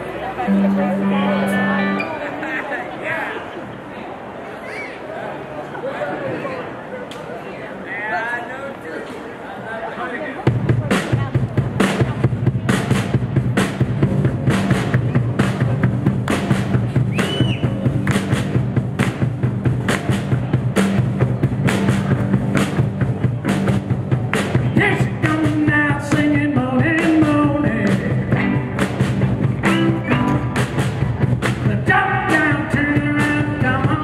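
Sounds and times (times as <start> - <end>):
bass guitar: 0.0 - 2.4, 10.5 - 34.0
electric guitar: 0.4 - 2.2, 24.3 - 34.0
drum kit beat: 10.5 - 34.0.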